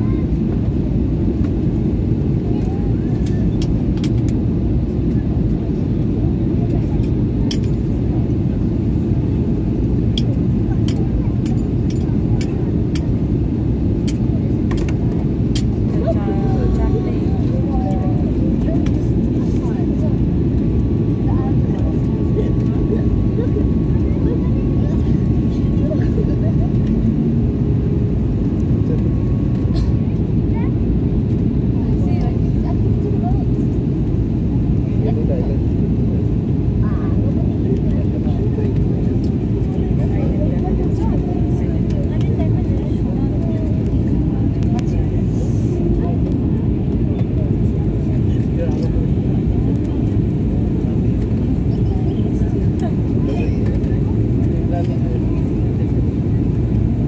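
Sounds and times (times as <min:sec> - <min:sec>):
jet cabin engine roar: 0:00.0 - 0:57.0.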